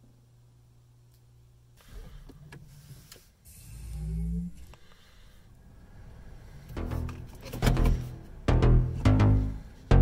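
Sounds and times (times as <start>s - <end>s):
low hum: 3.5s - 10.0s.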